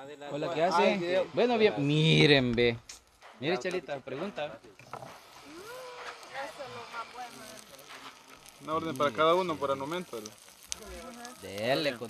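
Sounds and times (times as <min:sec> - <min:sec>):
peppers hissing on a griddle: 0:04.7 - 0:12.0.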